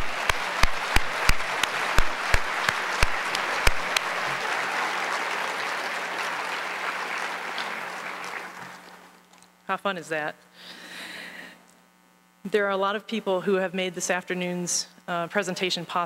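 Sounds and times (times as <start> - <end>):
loud sharp hand claps: 0.0 - 8.8
audience applauding: 0.0 - 9.2.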